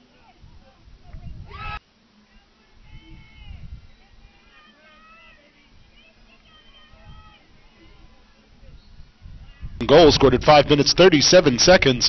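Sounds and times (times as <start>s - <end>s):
distant shouted calls: 1.5s - 9.8s.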